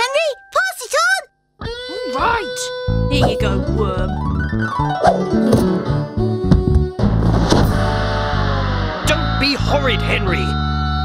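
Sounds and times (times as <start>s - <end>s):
cartoon music with bending guitar notes: 1.6s - 11.0s.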